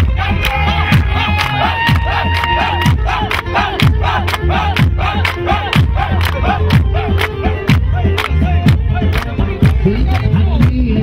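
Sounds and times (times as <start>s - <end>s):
crowd shouting along: 0.0s - 9.2s
party music with pounding beat: 0.0s - 11.0s
crowd clapping: 0.3s - 10.7s.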